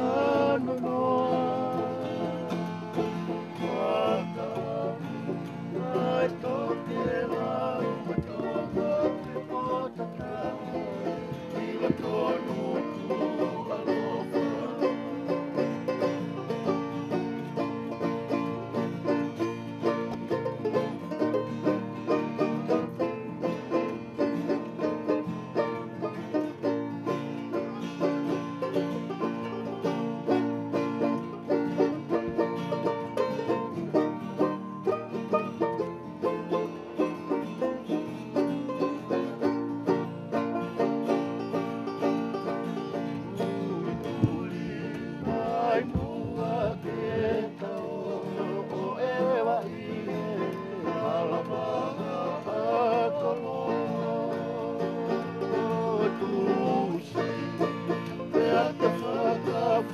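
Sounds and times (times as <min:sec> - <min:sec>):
acoustic guitars strumming: 0:00.0 - 0:59.9.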